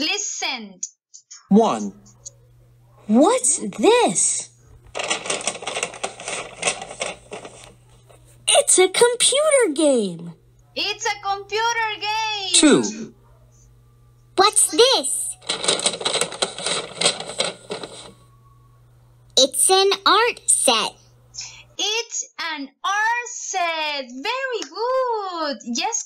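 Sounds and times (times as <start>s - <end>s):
wrapping paper crackling and tearing: 4.8s - 8.2s, 15.4s - 18.3s.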